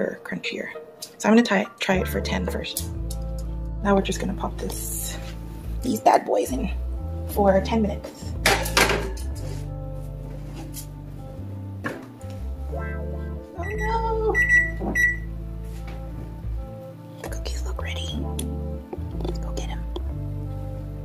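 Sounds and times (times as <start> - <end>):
background music with bass line: 2.0 - 21.0.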